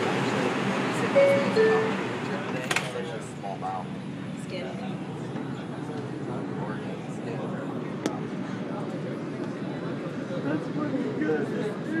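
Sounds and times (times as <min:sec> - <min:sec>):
people talking: 0:00.0 - 0:12.0
subway car rumble: 0:00.0 - 0:12.0.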